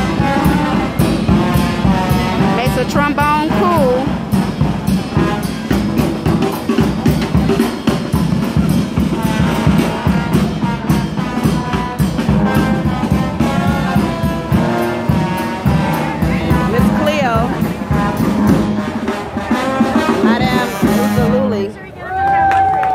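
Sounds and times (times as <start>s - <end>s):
bass drum beat: 0.0s - 21.7s
trombone: 0.0s - 21.7s
trumpet: 0.0s - 21.8s.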